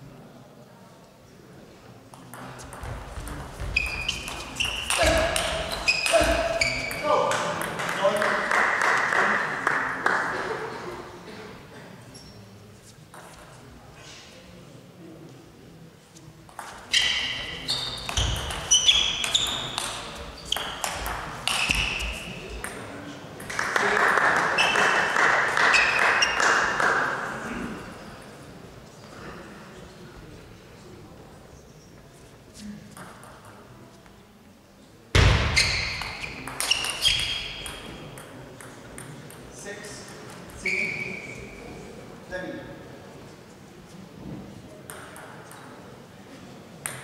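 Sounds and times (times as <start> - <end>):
sharp table tennis hit: 2.3 - 8.3, 16.5 - 23.7, 35.2 - 39.4, 44.9 - 45.6.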